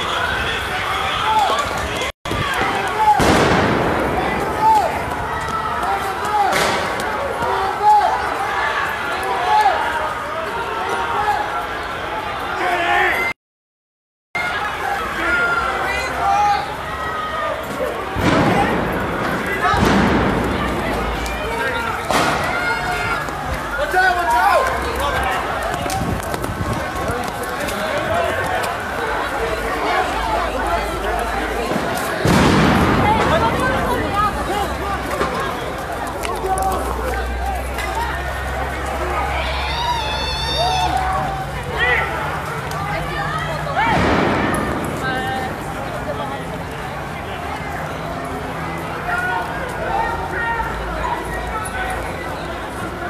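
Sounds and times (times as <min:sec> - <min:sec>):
shouting voices: 0:00.0 - 0:13.4, 0:14.4 - 0:53.0
sudden bang with noisy rush: 0:03.2 - 0:04.8, 0:18.2 - 0:21.2, 0:31.6 - 0:35.4, 0:43.8 - 0:46.0
footsteps running on pavement: 0:20.5 - 0:32.3, 0:33.1 - 0:41.3.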